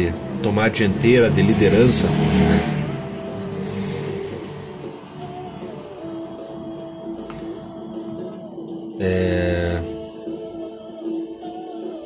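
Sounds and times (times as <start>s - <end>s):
background music with long held notes: 0.0s - 12.0s.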